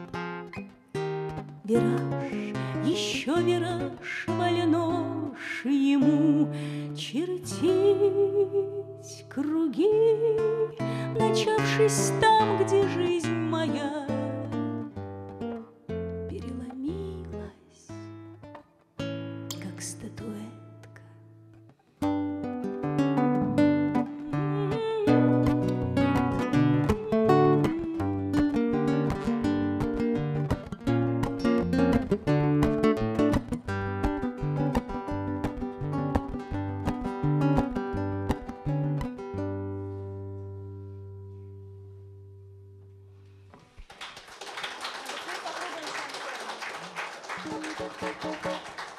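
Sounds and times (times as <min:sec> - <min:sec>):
classical guitars playing: 0:00.0 - 0:43.8, 0:47.4 - 0:48.9
audience applause: 0:43.8 - 0:48.9.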